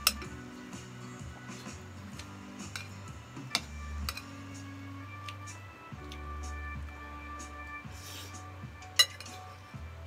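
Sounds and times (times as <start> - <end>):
background music: 0.0 - 10.0
metal spoon clinking on plate: 9.0 - 9.4.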